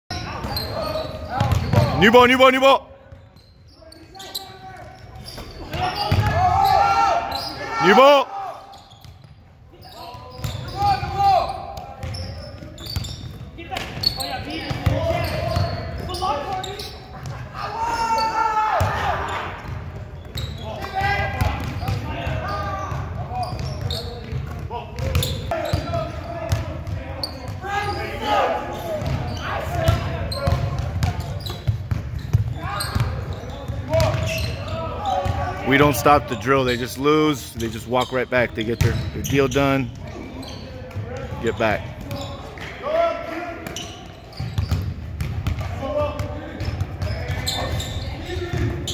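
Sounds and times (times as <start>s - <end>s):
players shouting: 0.3s - 2.9s, 4.8s - 8.8s, 10.5s - 12.2s, 14.4s - 19.6s, 27.5s - 30.9s, 32.5s - 44.0s
basketballs bouncing on hardwood floor: 1.3s - 2.0s, 5.7s - 6.5s, 14.6s - 16.1s, 19.6s - 25.9s, 26.5s - 27.6s, 29.0s - 34.5s, 43.7s - 47.8s.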